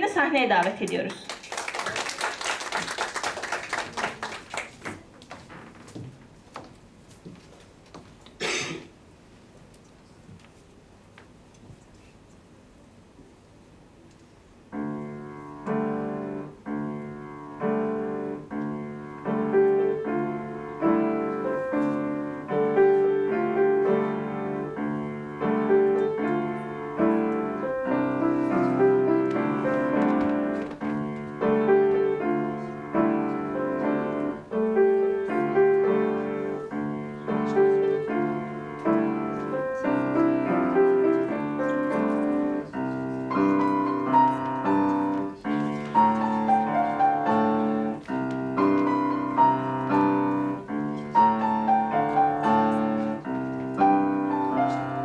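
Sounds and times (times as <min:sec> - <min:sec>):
grand piano playing: 0:14.7 - 0:55.0.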